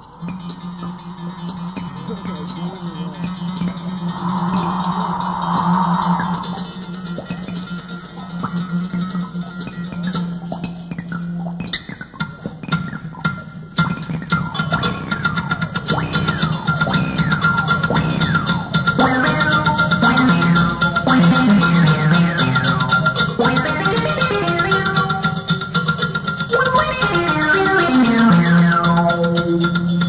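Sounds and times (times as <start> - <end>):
sustained low note: 0.8 - 8.0.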